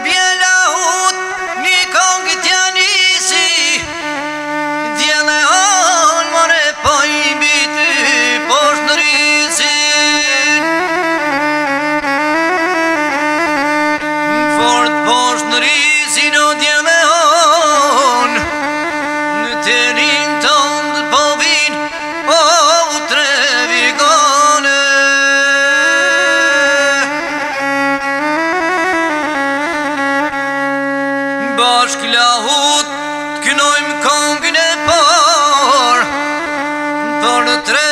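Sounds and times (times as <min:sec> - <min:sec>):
man singing: 0:00.0 - 0:11.9, 0:13.8 - 0:27.7, 0:31.2 - 0:37.9
bowed string melody: 0:00.0 - 0:37.9.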